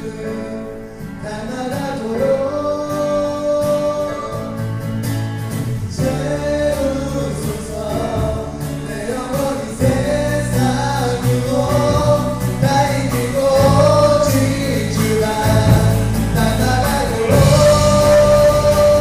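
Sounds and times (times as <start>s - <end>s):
people singing melody: 0.0s - 5.1s, 5.8s - 19.0s
acoustic guitar: 0.0s - 19.0s
bass: 0.0s - 19.0s
keyboard: 0.0s - 19.0s
drums: 1.7s - 19.0s.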